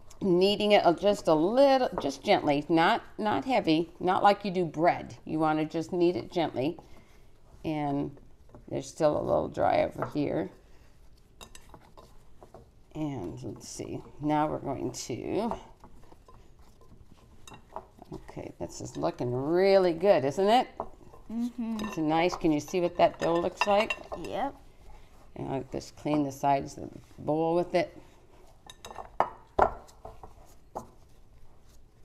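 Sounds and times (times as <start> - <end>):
hands kneading dough in bowl: 0.0 - 32.0.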